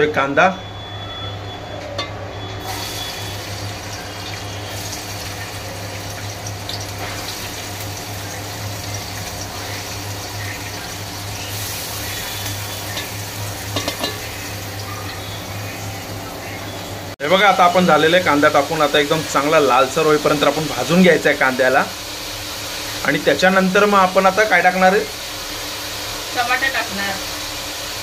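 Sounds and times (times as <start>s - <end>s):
onions sizzling in hot oil: 2.6s - 28.0s.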